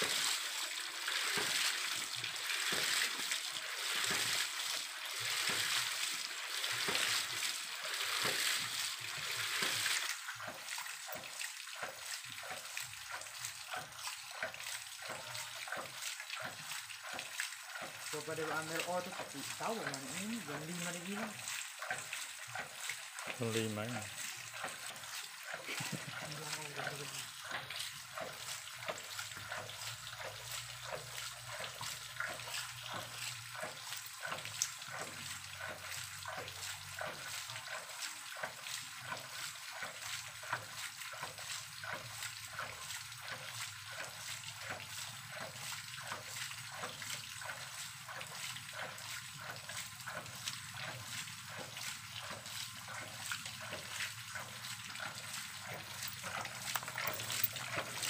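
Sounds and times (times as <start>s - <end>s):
water splashing and spraying: 0.0s - 58.0s.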